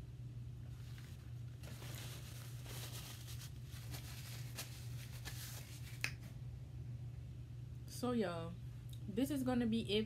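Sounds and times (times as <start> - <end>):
low electrical hum: 0.0 - 10.0
paper napkin rustling: 0.7 - 6.3.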